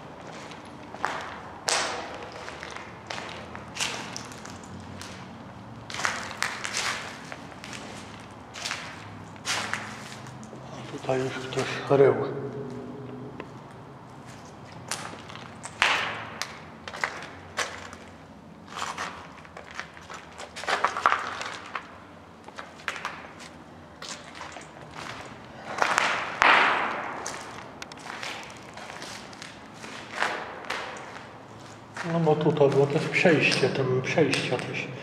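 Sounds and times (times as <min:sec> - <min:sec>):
footsteps walking: 0:00.0 - 0:11.8, 0:12.5 - 0:33.6
footsteps scuffing: 0:00.2 - 0:05.3, 0:05.9 - 0:11.7, 0:22.5 - 0:33.2.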